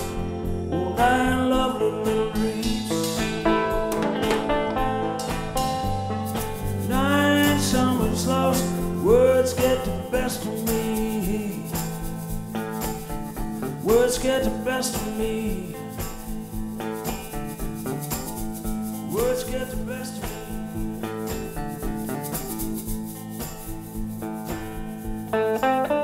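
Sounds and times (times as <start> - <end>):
steady drums: 0.0 - 25.4
slide resonator guitar: 0.0 - 26.0.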